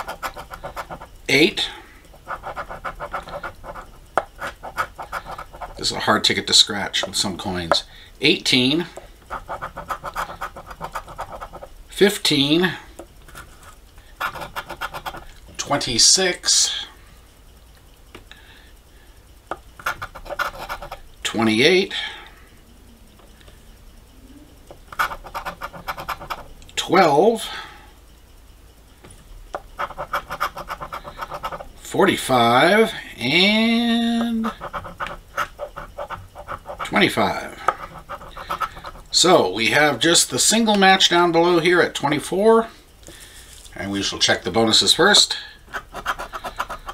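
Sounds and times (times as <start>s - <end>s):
coin scratching lottery ticket: 0.0s - 7.8s, 9.3s - 11.7s, 13.3s - 16.0s, 19.8s - 21.0s, 24.9s - 26.5s, 29.8s - 39.4s, 45.7s - 46.9s.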